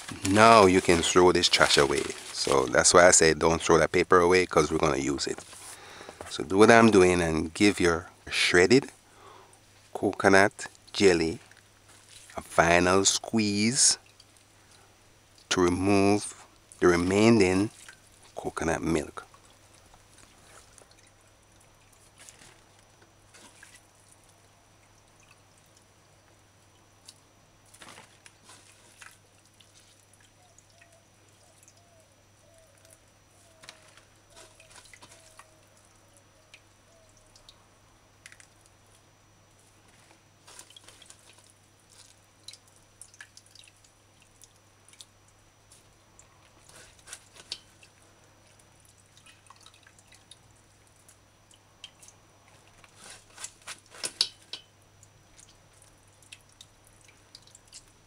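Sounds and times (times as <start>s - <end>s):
hand squeezing wet pulp: 0.0s - 3.6s, 10.4s - 15.5s, 16.2s - 25.9s, 27.0s - 32.0s, 32.6s - 35.9s, 39.6s - 58.0s
liquid dripping into steel pot: 23.8s - 25.9s, 40.6s - 45.4s, 47.3s - 58.0s.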